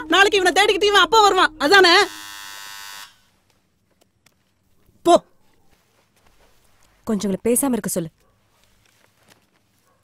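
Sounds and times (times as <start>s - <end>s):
electric buzz: 1.6s - 3.4s.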